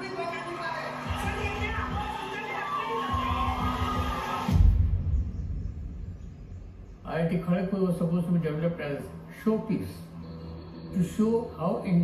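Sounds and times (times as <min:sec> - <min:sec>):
trailer music: 0:00.0 - 0:07.1, 0:08.6 - 0:12.0
deep cinematic bass hit: 0:04.5 - 0:07.0.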